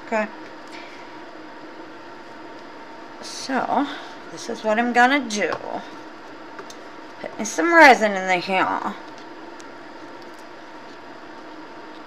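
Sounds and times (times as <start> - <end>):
air purifier fan humming: 0.0 - 12.0.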